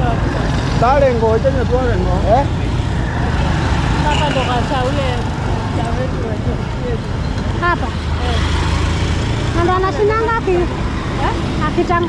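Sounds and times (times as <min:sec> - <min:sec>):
passers-by talking: 0:00.0 - 0:12.0
street traffic rumble: 0:00.0 - 0:12.0.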